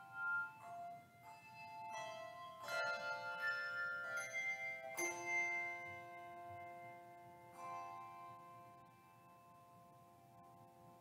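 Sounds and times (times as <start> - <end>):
handbell choir playing: 0.0 - 8.4.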